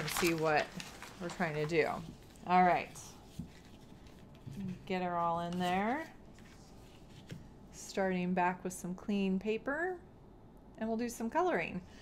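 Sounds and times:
woman speaking: 0.0s - 3.2s, 4.6s - 6.2s, 7.8s - 10.1s, 10.8s - 11.9s
paper rustling: 0.0s - 7.5s.

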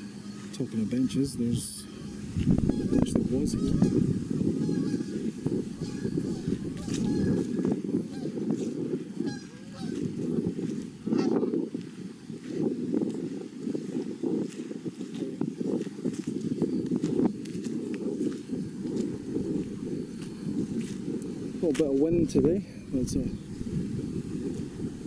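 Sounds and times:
geese honking: 0.0s - 8.5s, 9.2s - 10.2s, 11.0s - 11.6s.

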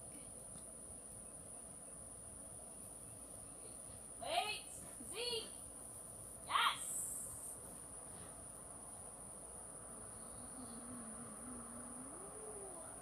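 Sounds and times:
insects trilling: 0.1s - 13.0s.

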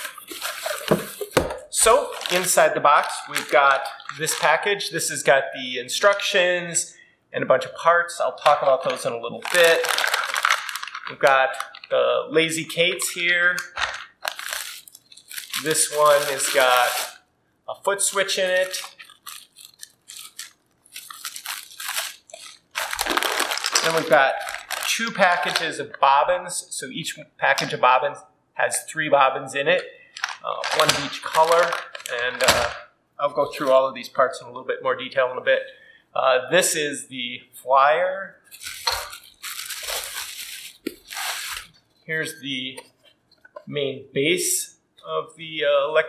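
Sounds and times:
bubble wrap crinkling: 0.0s - 4.7s, 8.4s - 12.0s, 13.0s - 17.2s, 18.0s - 25.7s, 30.2s - 32.8s, 38.5s - 41.9s
plastic and paper packaging rustling: 0.0s - 4.7s, 8.4s - 12.0s, 13.0s - 17.2s, 18.0s - 25.7s, 30.2s - 32.8s, 38.5s - 42.0s.

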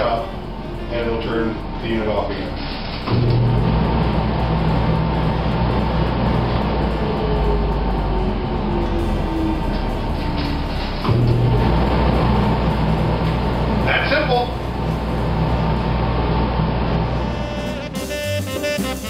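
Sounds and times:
dust collector motor humming: 0.0s - 18.8s.

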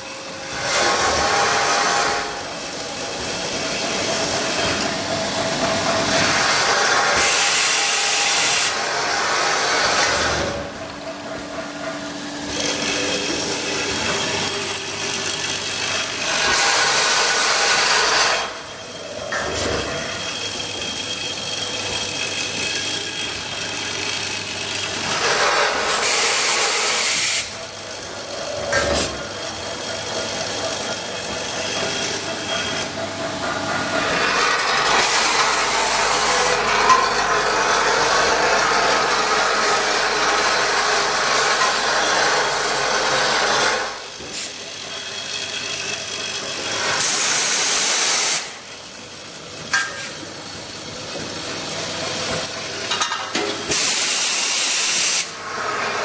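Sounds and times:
hissing machine noise: 0.0s - 56.0s.

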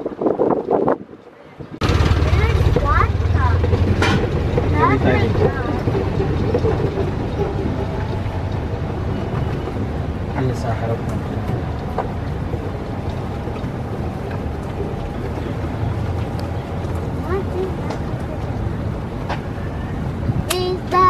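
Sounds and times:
golf cart rumble: 0.0s - 21.0s.

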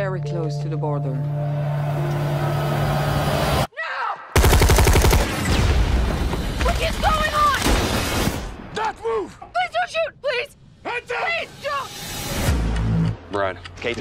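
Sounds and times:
rapid automatic gunfire: 4.4s - 5.6s.

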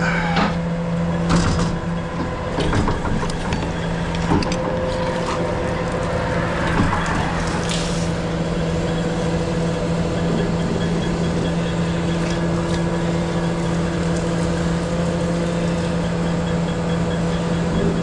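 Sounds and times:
truck engine and pump droning: 0.0s - 18.0s.

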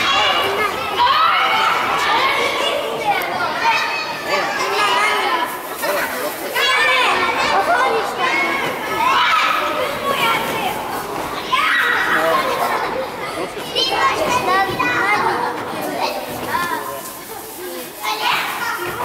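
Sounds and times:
children shouting in a gym: 0.0s - 16.8s.

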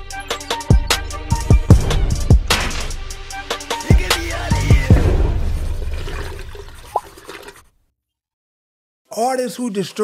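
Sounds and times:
watery rushing: 5.1s - 7.6s.

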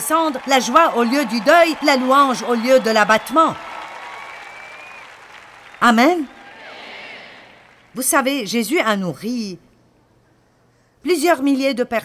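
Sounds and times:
arena audience applauding: 0.0s - 8.0s.

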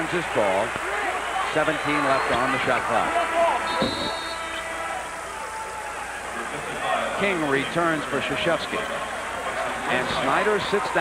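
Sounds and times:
arena crowd murmuring: 0.0s - 11.0s.

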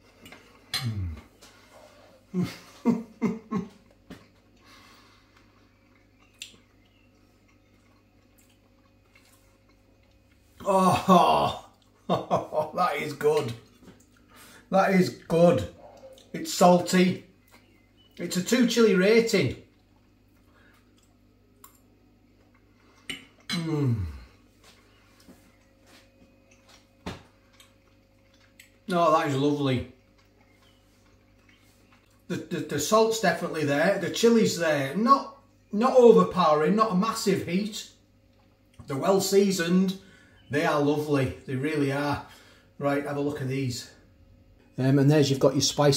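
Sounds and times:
faint steady hum: 0.0s - 45.9s
breathing: 1.4s - 2.2s, 4.6s - 5.6s, 14.3s - 14.7s, 20.4s - 20.9s, 40.0s - 40.4s, 42.2s - 42.8s
chewing: 3.7s - 10.6s, 13.4s - 16.4s, 19.6s - 23.6s, 24.2s - 28.9s, 29.8s - 32.3s, 38.2s - 38.9s
man saying oh with mouth full: 10.6s - 11.7s.

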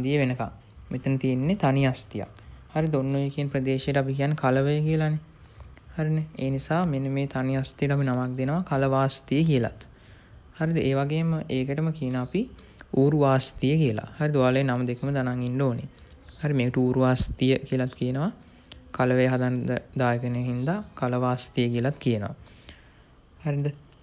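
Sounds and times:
crickets trilling: 0.0s - 24.0s
man talking: 10.6s - 18.4s.

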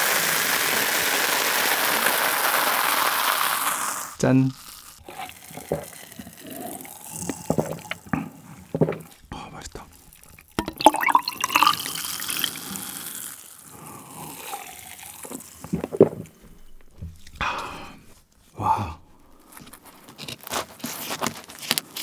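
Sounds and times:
soda pouring and fizzing: 0.0s - 16.4s
person gulping drink: 3.4s - 20.0s.

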